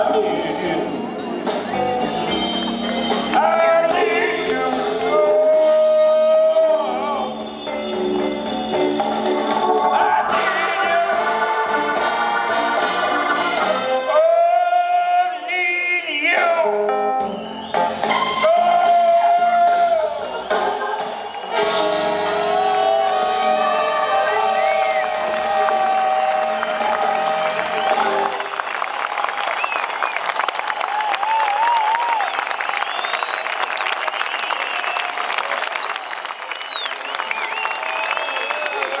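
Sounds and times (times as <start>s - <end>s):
blues band with horns: 0.0s - 30.2s
crowd applauding and cheering: 1.2s - 14.2s, 17.2s - 39.0s
high whistle: 17.2s - 18.9s, 32.8s - 39.0s.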